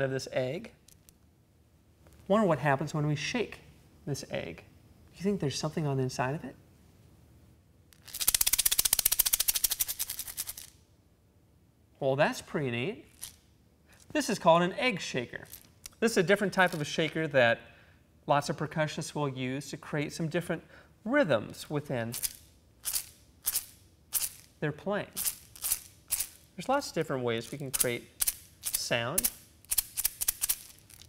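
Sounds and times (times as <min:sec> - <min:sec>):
plastic egg shaker rattling: 0:08.0 - 0:10.8, 0:13.1 - 0:13.4, 0:15.4 - 0:16.0, 0:16.6 - 0:16.9, 0:22.1 - 0:31.0.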